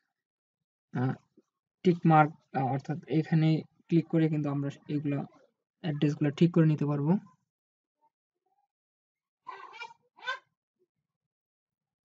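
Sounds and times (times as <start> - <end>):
short animal calls: 9.5 - 10.4.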